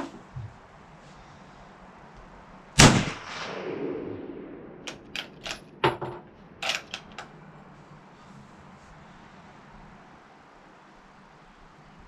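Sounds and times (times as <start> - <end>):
rifle shot with echo: 2.8 - 7.0
metallic rifle bolt clicks: 4.9 - 7.3.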